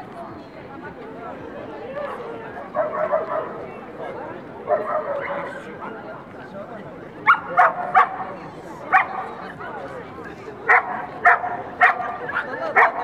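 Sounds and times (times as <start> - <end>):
murmur of crowd talk: 0.0 - 13.0
dog barking: 2.8 - 3.6, 7.2 - 8.2, 8.9 - 9.2, 10.7 - 13.0.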